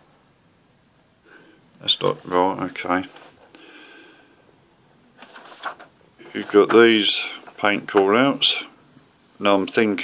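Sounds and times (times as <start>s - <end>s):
paper rustling: 5.2s - 8.1s.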